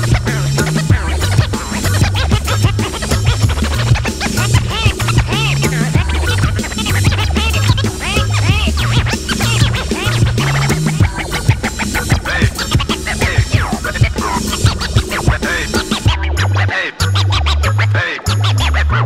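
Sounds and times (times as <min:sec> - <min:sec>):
steady drum pattern: 0:00.0 - 0:17.2
stepping bass line: 0:00.0 - 0:19.0
turntable scratching: 0:00.0 - 0:19.0.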